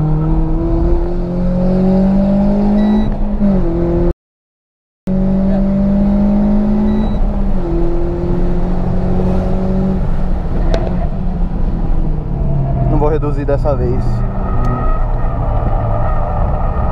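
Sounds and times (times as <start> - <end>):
car engine from inside cabin: 0.0 - 4.1, 5.1 - 13.0.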